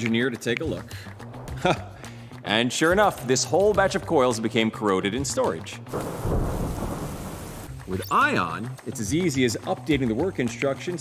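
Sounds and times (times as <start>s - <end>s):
heavy rain: 5.9s - 7.7s
thunder rumble: 5.9s - 7.7s.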